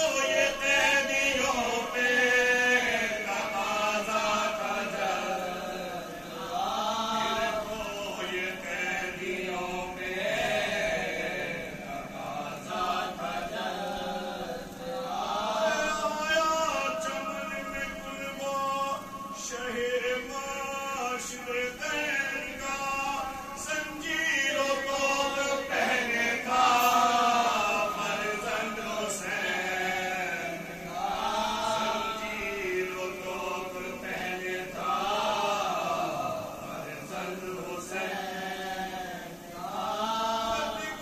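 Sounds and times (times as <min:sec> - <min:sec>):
man singing into a microphone: 0:00.0 - 0:10.2, 0:14.2 - 0:38.1
men chanting in unison: 0:00.0 - 0:41.0
men chanting an elegy: 0:20.7 - 0:41.0.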